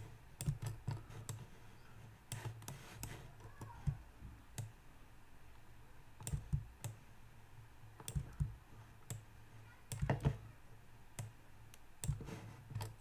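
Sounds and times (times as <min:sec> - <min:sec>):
mouse and keyboard clicks: 0:00.4 - 0:01.5, 0:02.3 - 0:04.8, 0:06.2 - 0:07.0, 0:08.0 - 0:09.3, 0:11.2 - 0:13.0.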